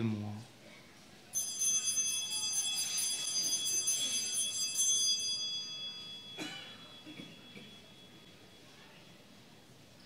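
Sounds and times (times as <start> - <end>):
altar bells ringing: 1.3 - 9.5.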